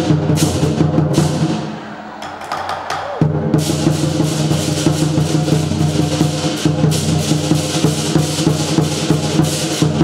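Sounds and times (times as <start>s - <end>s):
drums beaten in steady rhythm: 0.0s - 10.0s.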